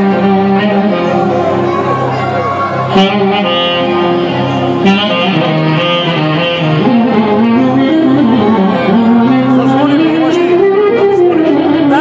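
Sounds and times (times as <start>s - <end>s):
live band music through pa: 0.0s - 12.0s
saxophone melody: 0.0s - 12.0s.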